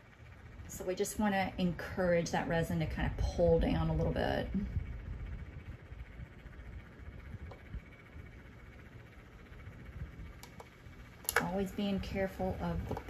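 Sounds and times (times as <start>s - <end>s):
faint low hum: 0.0s - 13.0s.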